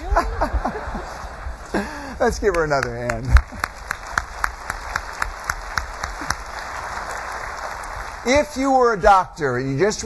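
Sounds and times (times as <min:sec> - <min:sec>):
audience applauding: 0:00.0 - 0:09.0
close claps: 0:02.4 - 0:08.3.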